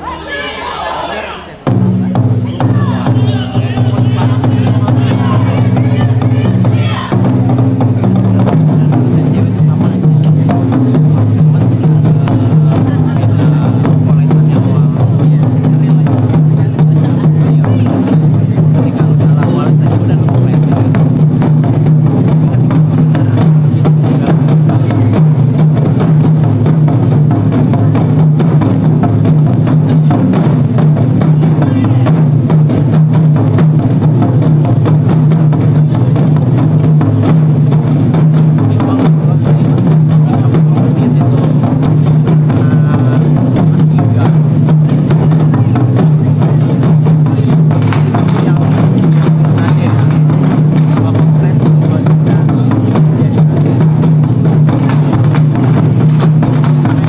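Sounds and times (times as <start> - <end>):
taiko drums beating: 0.0 - 57.0.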